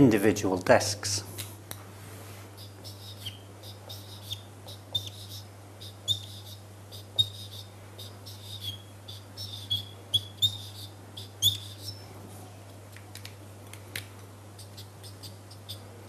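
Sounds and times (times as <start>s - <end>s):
steady low hum: 0.0s - 16.0s
marker squeaking on whiteboard: 2.6s - 12.0s, 14.6s - 15.9s.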